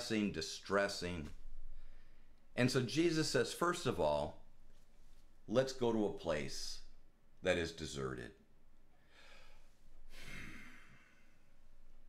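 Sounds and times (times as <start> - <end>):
quiet breathing: 1.6 - 2.6, 8.9 - 12.0
man breathing in and sighing: 9.0 - 11.6.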